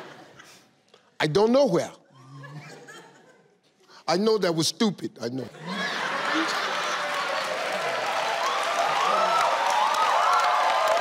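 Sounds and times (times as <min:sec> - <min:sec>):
studio audience applauding and cheering: 0:05.6 - 0:11.0.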